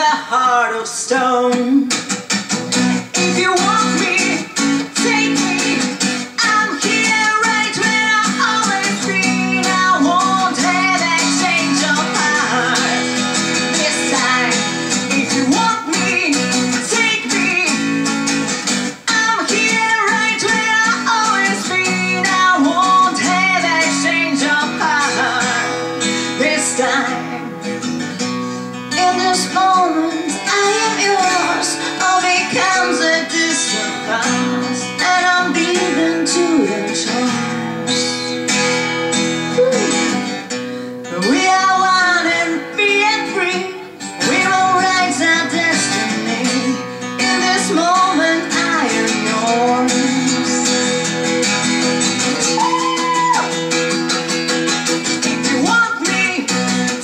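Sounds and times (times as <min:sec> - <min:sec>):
woman singing: 0:00.0 - 0:38.2, 0:39.6 - 0:57.0
acoustic guitar strumming: 0:00.0 - 0:57.0.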